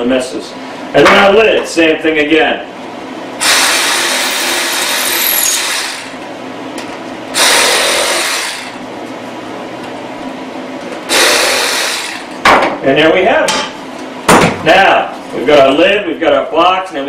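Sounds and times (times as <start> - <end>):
reciprocating saw cutting wood: 3.4 - 6.2, 7.4 - 8.8, 11.1 - 12.3.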